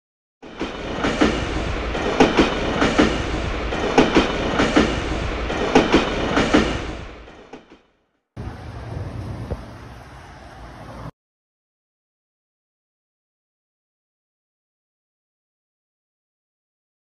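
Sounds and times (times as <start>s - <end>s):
train wheels clickety-clack: 0.4s - 7.9s.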